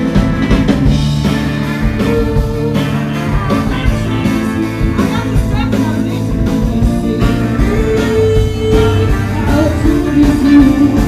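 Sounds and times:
horn section: 0.0 - 11.0
live band playing: 0.0 - 11.0
woman singing: 1.9 - 3.6, 4.2 - 11.0.

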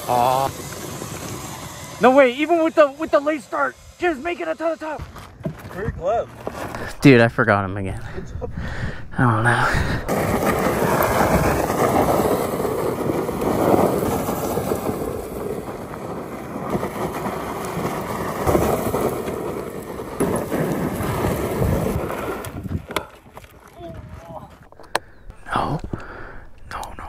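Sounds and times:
tyres scrabbling and spraying gravel: 0.0 - 27.0
wind buffeting microphone: 6.7 - 15.4, 20.5 - 23.0, 23.8 - 27.0.

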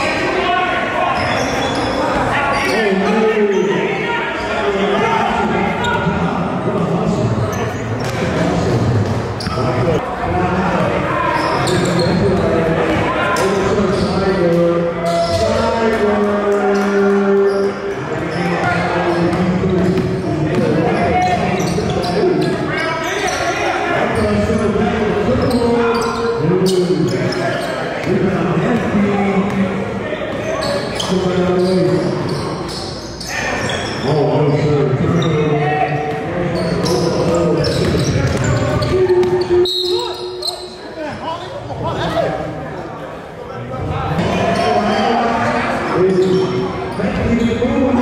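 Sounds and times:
players' voices echoing: 0.0 - 48.0.

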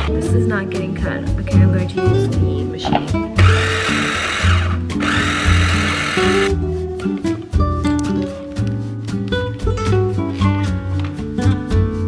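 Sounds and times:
acoustic guitar background music: 0.0 - 12.0
electric food chopper whirring: 3.4 - 6.5.

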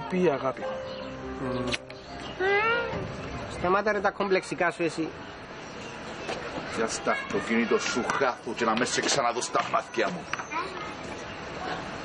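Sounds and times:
pitched cry rising and falling: 2.4 - 3.0
short wavering cries: 2.4 - 3.0.

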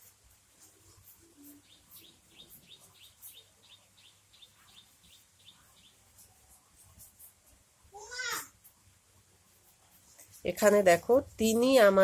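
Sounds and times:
chalk strokes on blackboard: 0.0 - 12.0.

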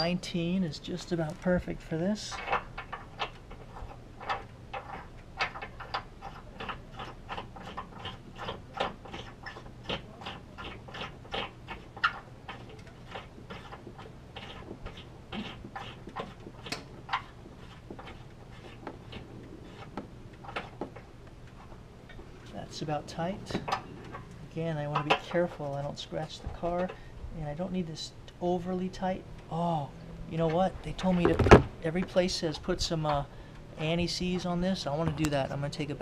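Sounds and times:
light clicks and scrapes: 0.9 - 27.1.

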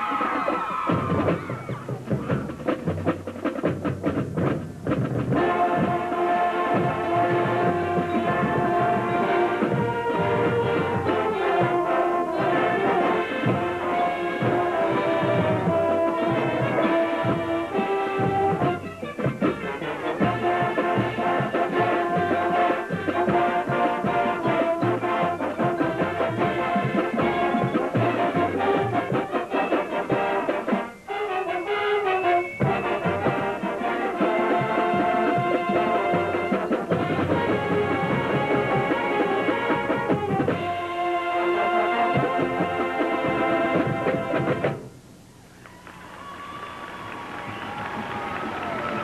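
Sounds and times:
marching band drums: 0.0 - 45.2, 46.2 - 49.0
brass sustained chords: 5.3 - 44.7.

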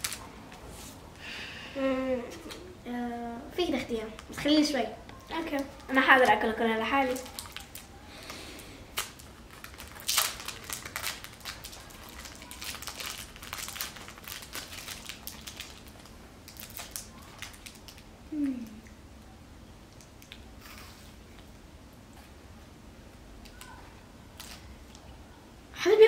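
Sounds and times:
chocolate wrapper crinkling: 0.0 - 0.3, 5.2 - 18.8, 24.4 - 24.7
short vocal sound: 18.3 - 18.9.

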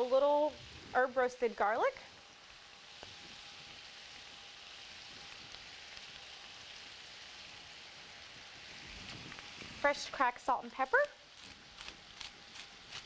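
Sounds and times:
vegetables sizzling in a pan: 0.0 - 13.0.

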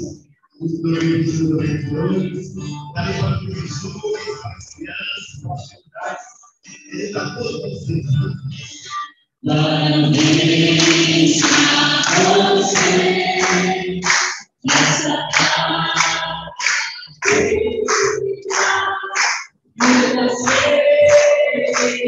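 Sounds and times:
rhythmic clapping: 0.0 - 1.8, 8.9 - 22.0
congregation singing: 0.0 - 5.3, 8.6 - 22.0.

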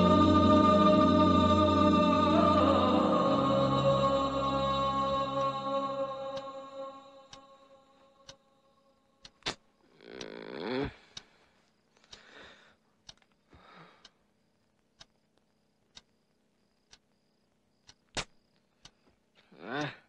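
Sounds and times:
clock ticking: 8.2 - 8.4, 9.2 - 17.2
sharp clicks: 9.2 - 12.3, 13.0 - 19.2
man snoring: 10.0 - 11.1.

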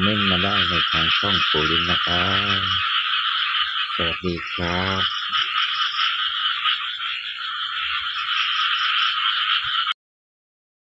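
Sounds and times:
fast repeating call: 0.0 - 7.2
frogs calling: 0.0 - 10.0.

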